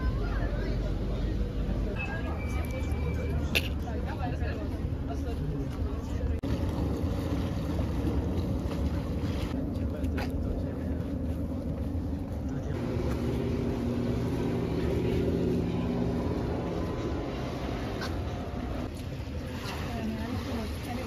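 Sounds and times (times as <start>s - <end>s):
low steady rumble: 0.0s - 21.0s
motorboat engine drone: 6.2s - 20.3s.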